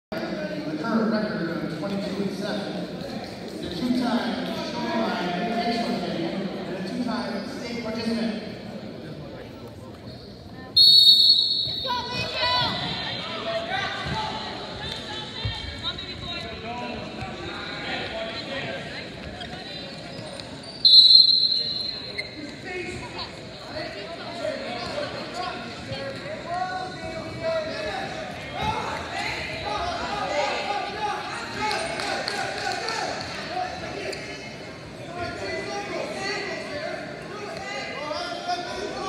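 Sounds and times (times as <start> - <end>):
referee's whistle blast: 10.8 - 12.2, 20.8 - 22.2.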